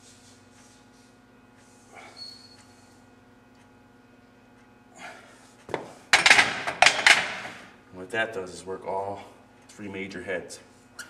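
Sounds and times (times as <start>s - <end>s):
dumbbells clanking on metal rack: 6.2s - 7.6s.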